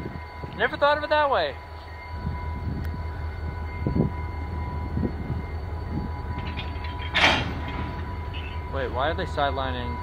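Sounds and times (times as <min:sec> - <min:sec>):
diesel locomotive rumbling: 0:00.0 - 0:10.0.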